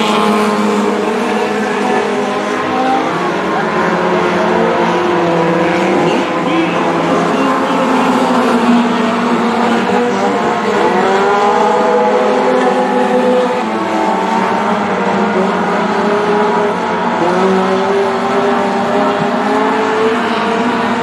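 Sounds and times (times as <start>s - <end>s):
racing car engines: 0.0s - 21.0s.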